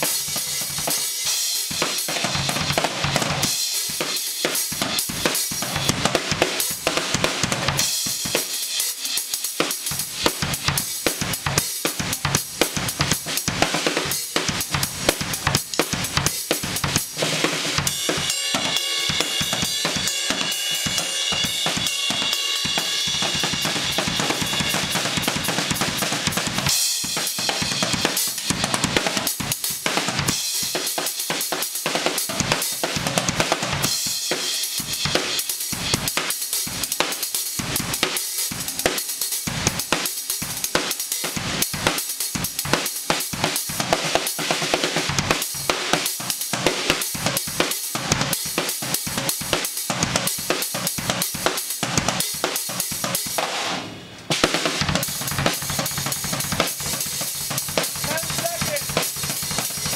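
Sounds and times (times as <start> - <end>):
bass drum and snare strikes: 1.7 - 8.5, 9.8 - 30.6, 39.5 - 59.9.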